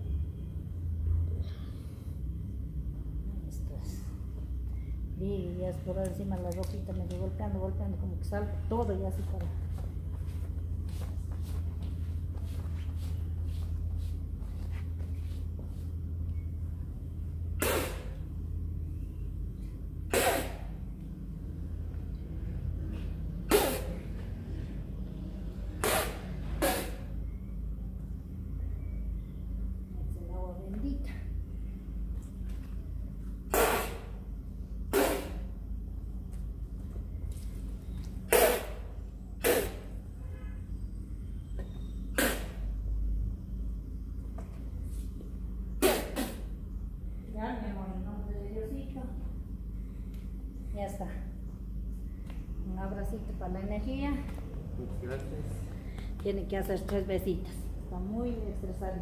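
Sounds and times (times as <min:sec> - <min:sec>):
person blowing liquid spray: 0:17.6 - 0:18.2, 0:20.1 - 0:20.8, 0:23.5 - 0:24.1, 0:25.8 - 0:27.2, 0:33.5 - 0:34.2, 0:34.9 - 0:35.6, 0:38.3 - 0:40.0, 0:42.1 - 0:42.7, 0:45.8 - 0:46.6.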